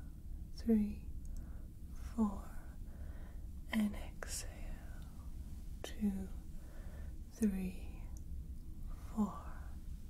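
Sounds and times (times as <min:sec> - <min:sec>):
low engine rumble ambience: 0:00.0 - 0:10.0
woman whispering: 0:00.6 - 0:01.1, 0:02.0 - 0:02.8, 0:03.6 - 0:06.5, 0:07.3 - 0:08.2, 0:08.9 - 0:09.8.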